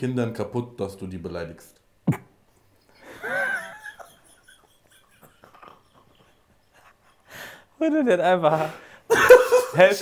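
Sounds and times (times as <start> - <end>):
man chuckling under his breath: 2.1 - 7.6.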